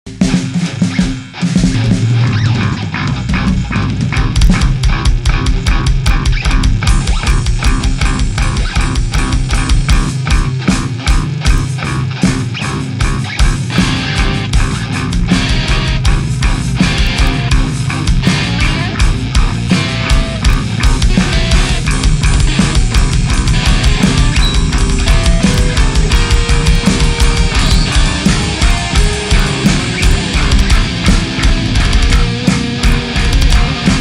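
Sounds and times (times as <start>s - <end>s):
bass guitar: 0.1s - 34.0s
distorted electric guitar: 0.1s - 34.0s
rapid drum strokes: 0.1s - 34.0s.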